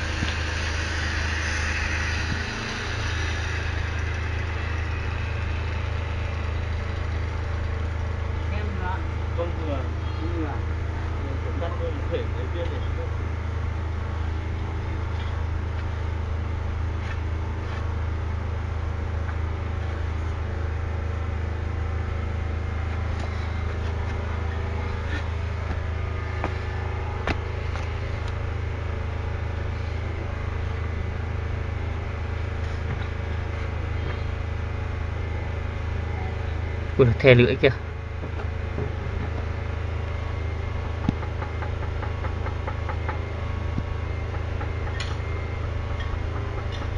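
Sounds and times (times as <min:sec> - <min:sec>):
steady low hum: 0:00.0 - 0:46.9.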